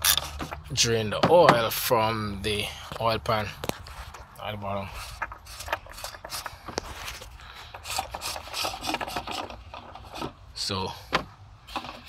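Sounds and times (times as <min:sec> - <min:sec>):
glove scraping on plastic cap: 0:04.9 - 0:10.4.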